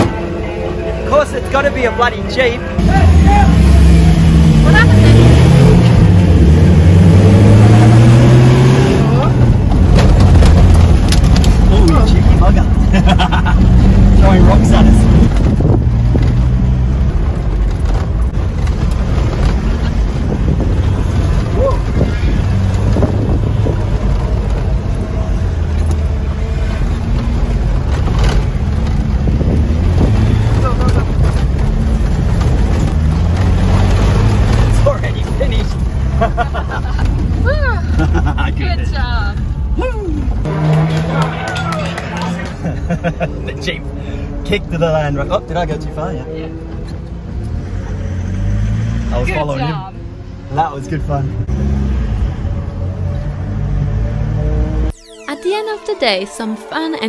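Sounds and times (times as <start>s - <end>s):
car engine running hard: 0.0s - 54.9s
road noise: 0.0s - 57.0s
rattles from rough track: 2.8s - 39.5s.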